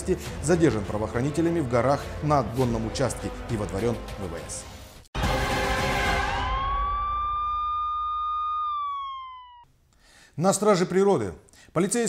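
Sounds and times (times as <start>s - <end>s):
siren tone: 5.2s - 9.7s.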